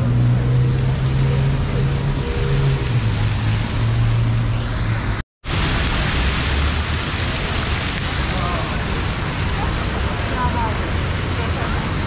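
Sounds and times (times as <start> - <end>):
city street noise: 0.0 - 12.0
fountain water jets hissing: 1.2 - 12.0.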